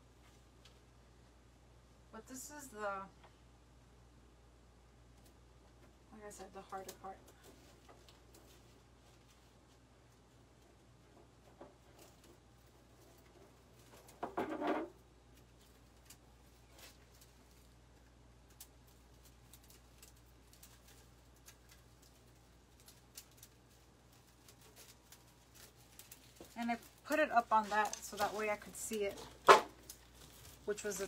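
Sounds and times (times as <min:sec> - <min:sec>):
rustling wreath and ribbons: 0:05.0 - 0:31.0.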